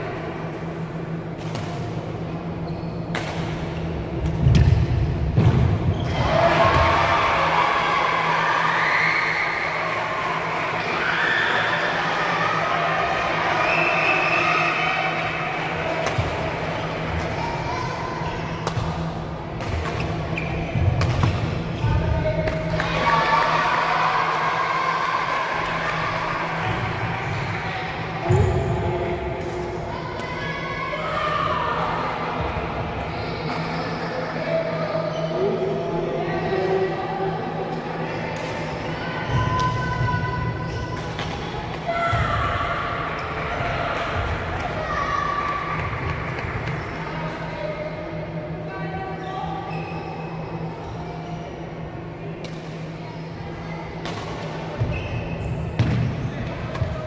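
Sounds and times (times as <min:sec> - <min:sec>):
hall hum and murmur: 0:00.0 - 0:57.0
shoe squeaks: 0:02.6 - 0:03.1, 0:20.1 - 0:20.8, 0:49.7 - 0:51.4, 0:54.8 - 0:55.8.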